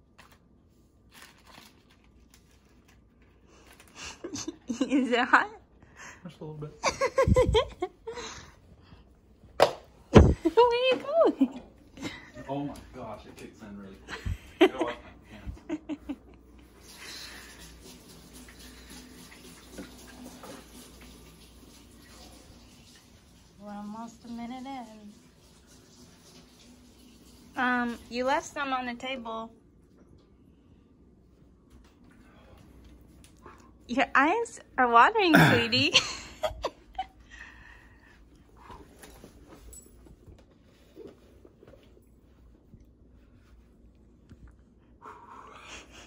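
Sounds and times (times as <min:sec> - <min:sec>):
faint steady hum: 0:00.0 - 0:46.0
packaging crinkling: 0:01.0 - 0:03.9.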